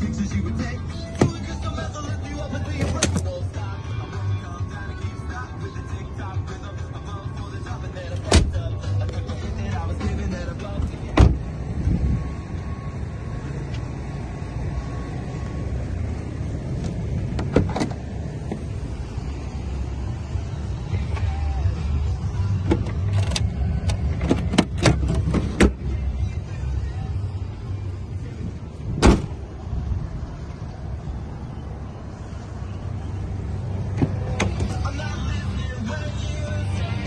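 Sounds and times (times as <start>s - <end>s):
steady low rumble: 0.0s - 37.0s
car door shutting: 1.0s - 1.6s, 2.7s - 3.4s, 8.2s - 8.7s, 10.8s - 11.5s, 16.8s - 18.7s, 22.6s - 25.8s, 28.9s - 29.4s, 33.9s - 34.8s
latch clicks: 2.7s - 3.3s
car tailgate slamming shut: 8.3s - 8.6s, 11.2s - 11.4s, 29.0s - 29.4s.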